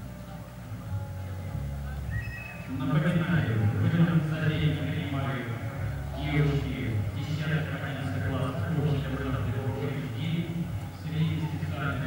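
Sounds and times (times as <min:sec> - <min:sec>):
crowd voices: 0:00.0 - 0:12.0
music: 0:00.0 - 0:12.0.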